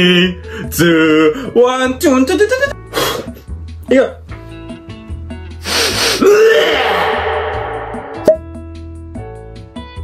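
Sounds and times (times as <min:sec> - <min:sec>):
background music: 0:00.0 - 0:10.0
man gagging groan: 0:06.2 - 0:08.1.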